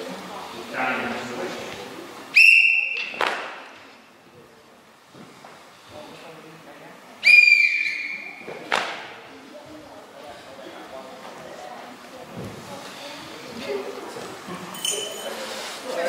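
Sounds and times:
referee's whistle blasts: 2.4s - 3.2s, 7.2s - 8.4s.

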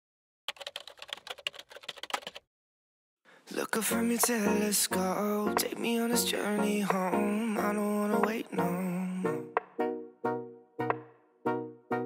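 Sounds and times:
rapid keyboard typing clicks: 0.5s - 2.4s.

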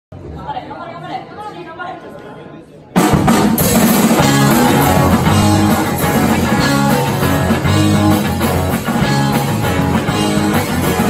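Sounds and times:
people chattering in echoing room: 0.1s - 11.0s.

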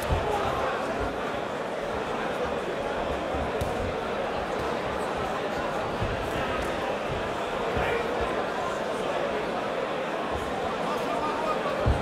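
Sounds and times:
crowd chatter and shouting: 0.0s - 12.0s.

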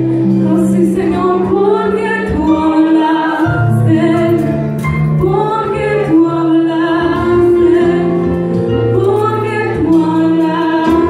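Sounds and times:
live band keyboard and guitars: 0.0s - 11.0s
woman singing into a microphone: 0.2s - 11.0s.

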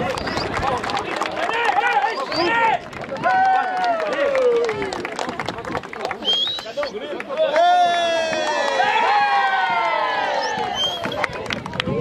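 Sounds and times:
crowd shouting: 7.4s - 11.2s.

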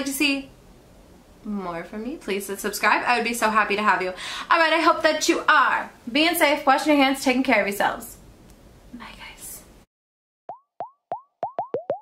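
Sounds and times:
electronic bubble-pop bloops: 10.5s - 12.0s.

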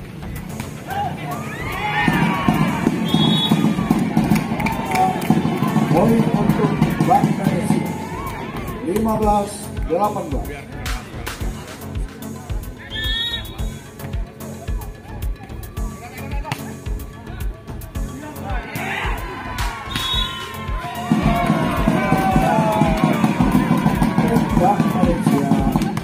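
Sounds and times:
background music with steady beat: 0.0s - 26.0s
crowd shouting and cheering: 0.6s - 26.0s
spectators' voices: 0.6s - 26.0s.

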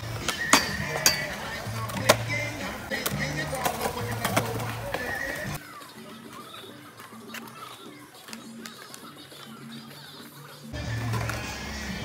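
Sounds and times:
background music with vocals: 0.0s - 12.0s
skateboard clacks on concrete: 0.2s - 10.4s.

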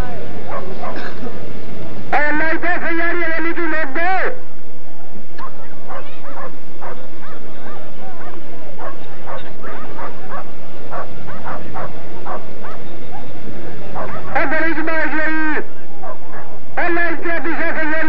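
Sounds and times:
people's voices: 0.0s - 18.0s
dogs barking and yelping: 0.4s - 1.4s, 5.4s - 14.4s, 15.8s - 16.7s.

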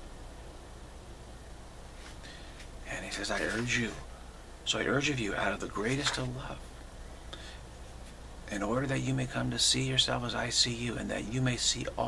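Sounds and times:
low steady hum: 0.0s - 12.0s
faint intake of breath: 2.0s - 2.7s, 7.1s - 7.8s
man speaking: 2.8s - 4.1s, 4.7s - 6.6s, 8.5s - 12.0s.

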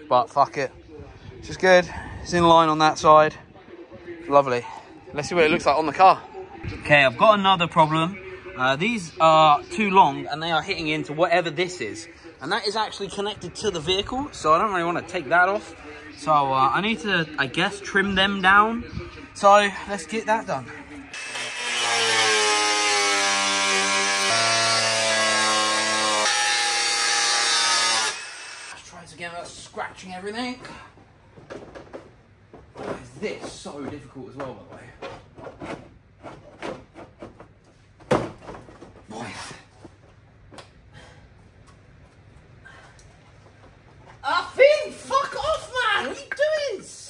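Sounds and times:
power tool cutting steel: 21.1s - 28.8s.

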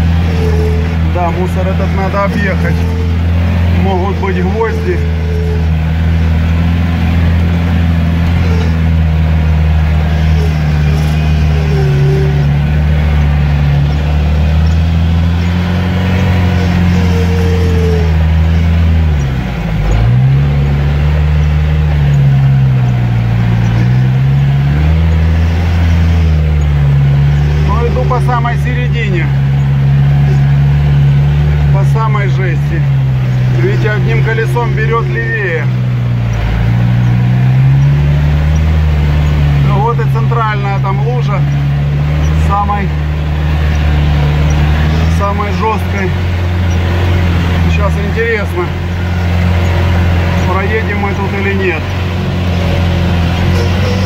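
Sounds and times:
off-road vehicle engine running: 0.0s - 54.0s.

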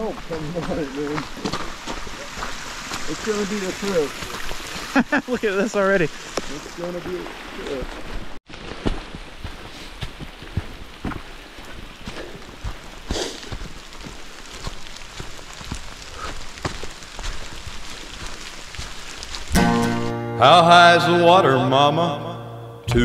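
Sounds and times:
water drips: 0.0s - 19.6s
rain on a hard surface: 0.0s - 20.1s
country song with singing: 19.6s - 23.0s.

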